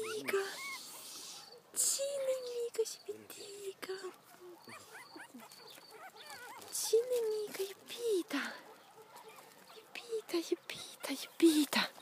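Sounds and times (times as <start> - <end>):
puppies whimpering: 0.0 - 1.7, 3.0 - 7.8.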